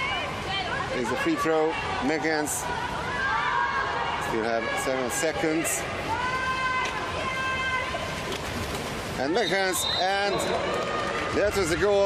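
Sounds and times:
hubbub of pool hall: 0.0 - 12.0
referee's whistle blast: 9.4 - 10.4.

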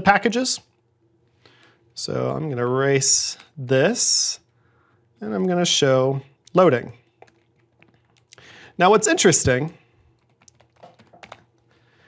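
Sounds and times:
faint keyboard typing: 7.0 - 8.4, 10.0 - 11.7.

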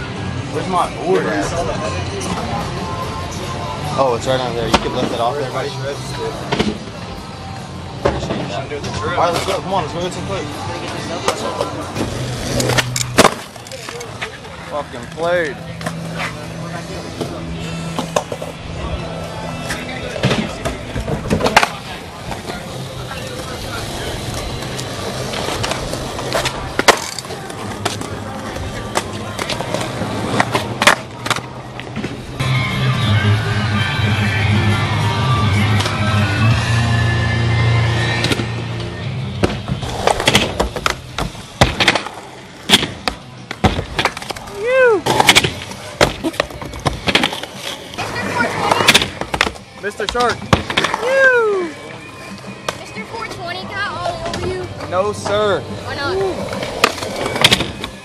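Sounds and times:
background music: 0.0 - 58.0
skateboards rolling on concrete: 0.0 - 58.0.

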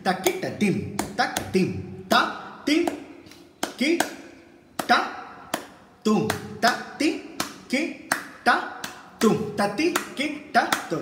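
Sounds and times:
man speaking rhythmic syllables: 0.0 - 11.0.

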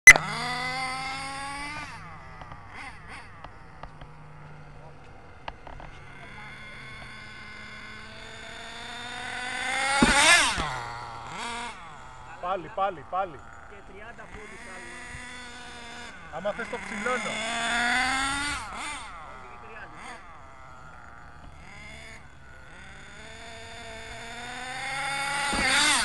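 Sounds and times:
small engine revving high: 0.1 - 26.0.

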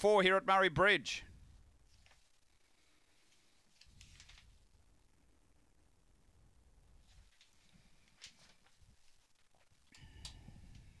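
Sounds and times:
soft held tone: 9.9 - 11.0.

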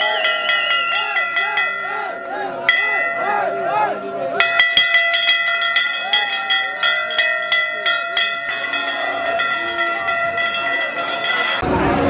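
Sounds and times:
crowd chatter: 0.0 - 12.0
metal bells ringing rapidly: 0.0 - 12.0.

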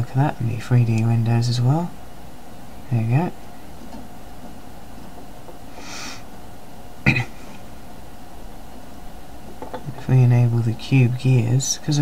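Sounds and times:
background hiss: 0.0 - 12.0
man sniffing: 5.8 - 6.3.

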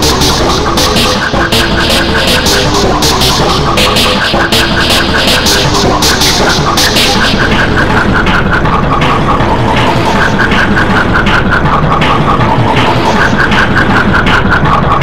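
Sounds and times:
dense rumbling noise: 0.0 - 15.0
distorted cartoon soundtrack: 0.0 - 15.0.

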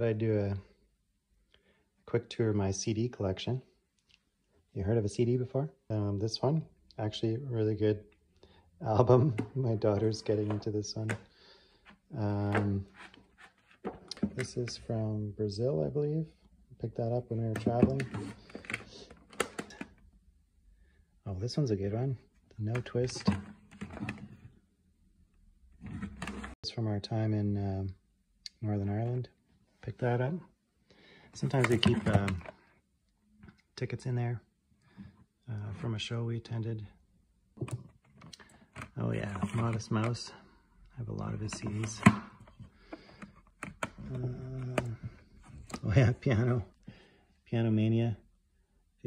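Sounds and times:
plastic cases clicking together: 17.5 - 20.0, 31.4 - 32.5, 41.5 - 45.8.

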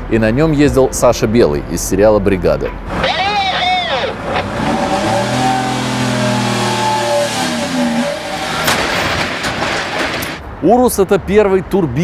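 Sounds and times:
vehicle engine running: 2.9 - 8.6.

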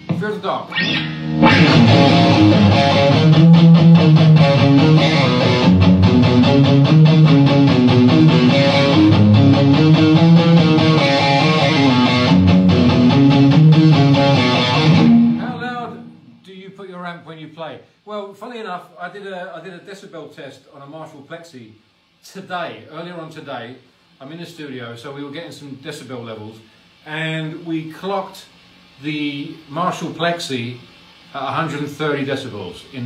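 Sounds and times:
electric guitar riff: 0.0 - 16.4.

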